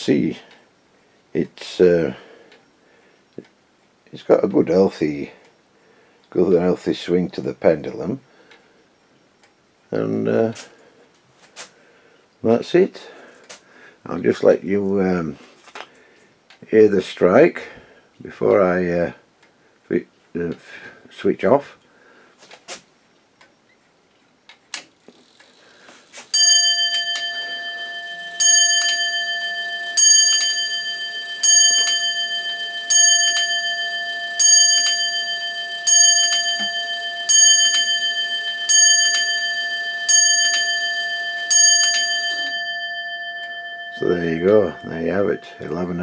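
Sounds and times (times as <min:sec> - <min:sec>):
clock mechanism clicks: 0:24.5 - 0:46.0
clock striking bell: 0:26.3 - 0:46.0.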